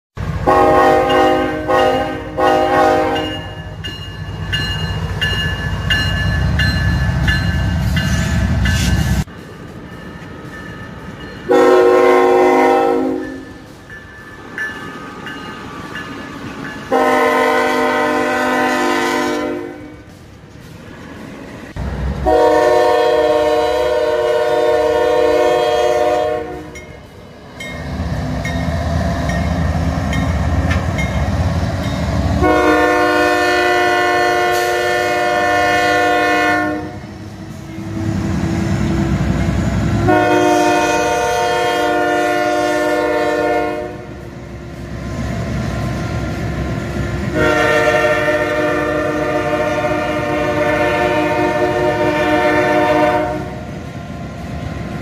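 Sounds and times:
low train rumble: 0.2 - 55.0
multi-note train horn blasts: 0.4 - 3.8, 11.5 - 13.7, 16.9 - 20.1, 22.2 - 26.8, 32.4 - 37.1, 40.0 - 44.2, 47.3 - 53.7.

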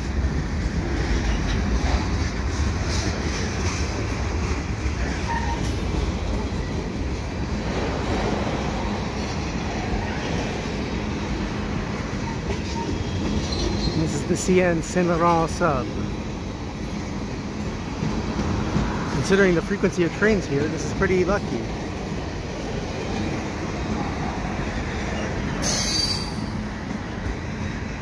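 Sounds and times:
train wheels rumbling on rail: 0.0 - 28.0.

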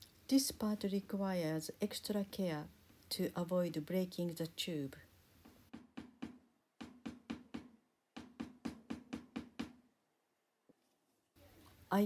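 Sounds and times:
clay tapped on board: 5.7 - 9.8.

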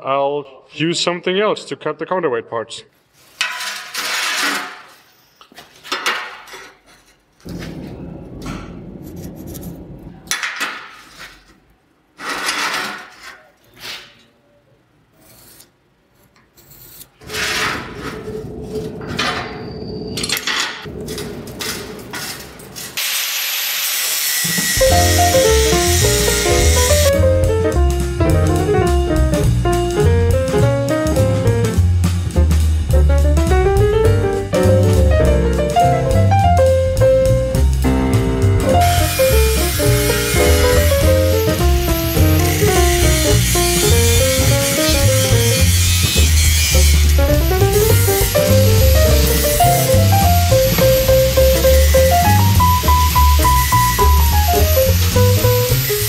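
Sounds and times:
steel bar scraping on steel table: 12.2 - 13.4
loud hiss: 22.8 - 27.2, 38.8 - 56.0
jazz music: 24.8 - 56.0.

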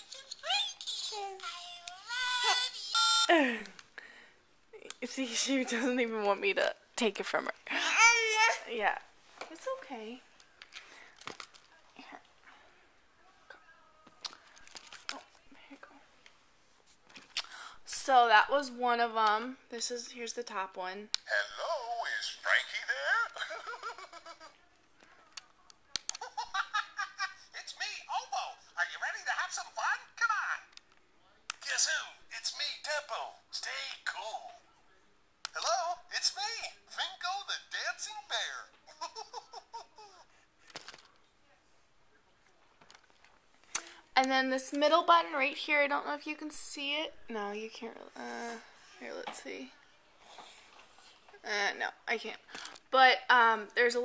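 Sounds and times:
toy phone sing-song voice: 0.0 - 3.3.

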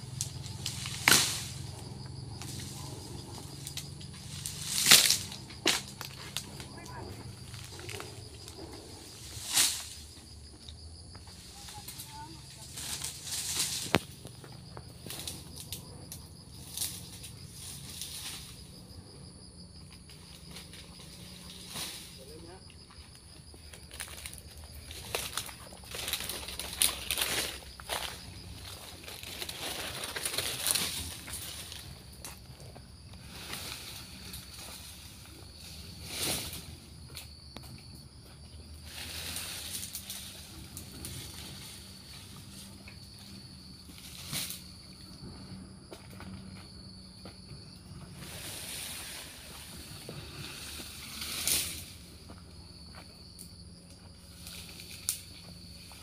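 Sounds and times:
sharp crack: 0.2 - 1.6, 4.5 - 6.2
palm fronds swishing: 2.4 - 7.9, 11.5 - 14.2, 48.2 - 52.1.

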